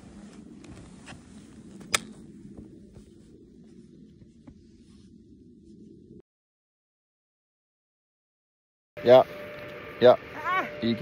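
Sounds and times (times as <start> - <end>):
rustling in powder snow: 0.0 - 6.2.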